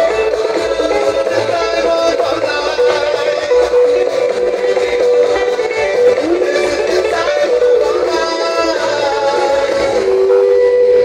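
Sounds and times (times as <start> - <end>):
amplified live band music: 0.0 - 11.0.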